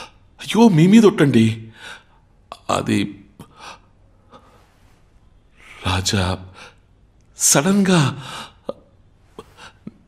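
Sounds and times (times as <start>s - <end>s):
person speaking: 5.6s - 6.7s.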